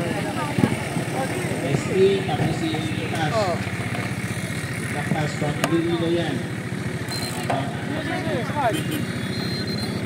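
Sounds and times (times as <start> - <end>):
people's voices: 0.0 - 10.0
vehicle engine idling: 0.0 - 10.0.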